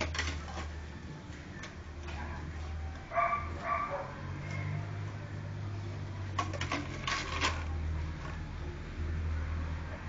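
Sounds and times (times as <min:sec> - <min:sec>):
puppy barking: 0:02.1 - 0:04.8.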